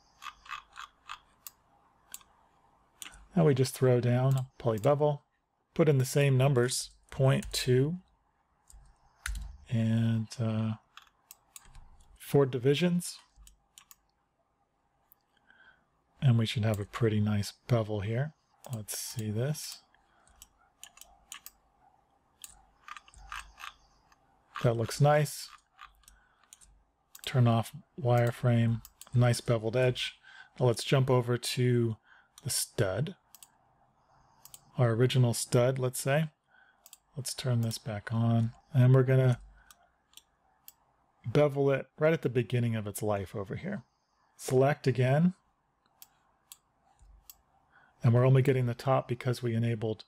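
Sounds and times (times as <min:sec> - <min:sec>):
computer mouse clicking: 0:00.0 - 0:02.4, 0:04.3 - 0:04.9, 0:08.6 - 0:09.6, 0:10.8 - 0:12.2, 0:13.2 - 0:14.2, 0:18.6 - 0:21.6, 0:22.4 - 0:24.7, 0:25.5 - 0:27.3, 0:28.2 - 0:29.2, 0:33.3 - 0:33.6, 0:34.4 - 0:34.7, 0:36.8 - 0:37.7, 0:39.4 - 0:40.8, 0:45.8 - 0:47.5
mouse and keyboard clicking: 0:00.0 - 0:02.4, 0:08.7 - 0:09.6, 0:10.9 - 0:12.1, 0:13.2 - 0:14.1, 0:19.7 - 0:21.6, 0:22.4 - 0:24.7.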